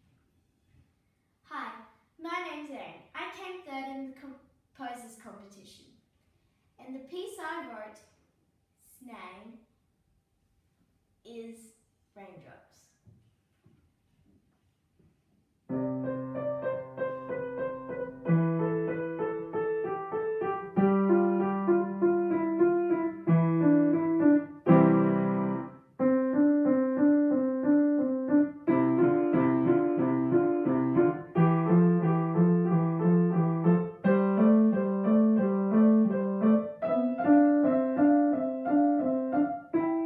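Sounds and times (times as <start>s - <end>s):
solo grand piano piece: 15.7s - 40.0s.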